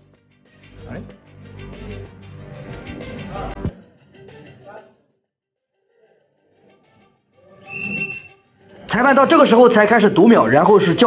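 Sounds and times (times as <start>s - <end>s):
short high whistle: 7.6s - 8.4s.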